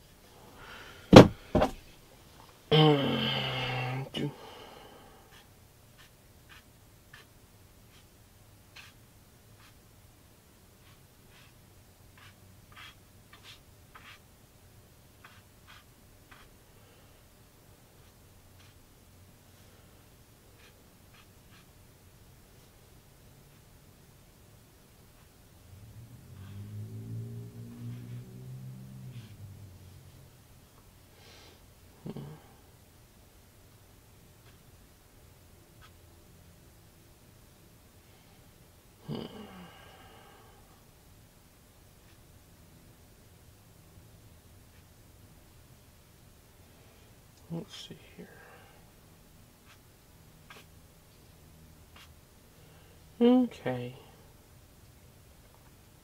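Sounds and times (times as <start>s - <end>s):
sharp knocks: 1.1s - 1.8s
man humming: 2.7s - 4.4s, 32.0s - 32.6s, 39.0s - 39.8s.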